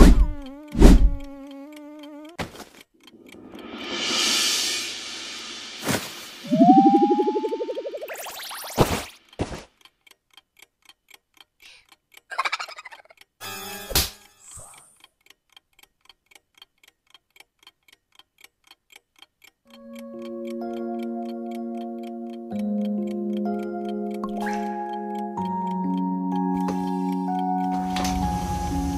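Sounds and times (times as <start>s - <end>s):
wall clock ticking: 0.0s - 3.8s, 9.2s - 12.3s, 13.0s - 13.4s, 15.0s - 27.8s
soft music chords: 6.4s - 8.3s, 19.8s - 28.9s.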